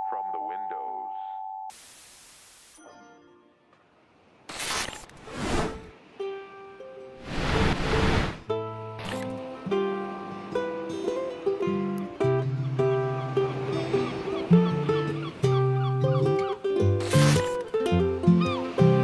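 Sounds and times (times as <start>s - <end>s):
static-like hissing noise: 1.7s - 2.8s, 7.2s - 8.5s
ukulele picking a melody: 6.2s - 7.2s, 8.5s - 19.0s.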